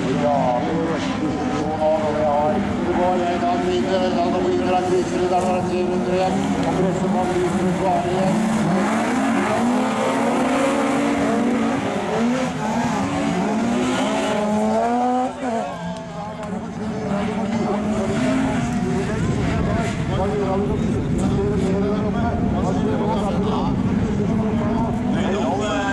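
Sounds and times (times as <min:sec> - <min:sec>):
racing car engines revving: 0:00.0 - 0:25.9.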